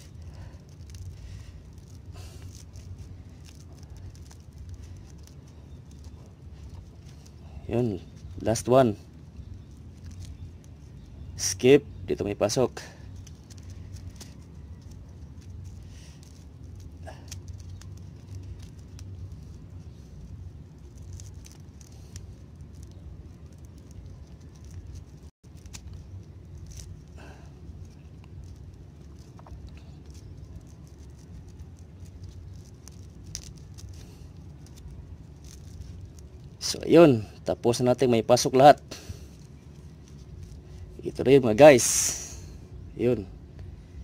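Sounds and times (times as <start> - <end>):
rope rustling and rubbing: 0.0 - 44.0
steady low hum: 0.0 - 44.0.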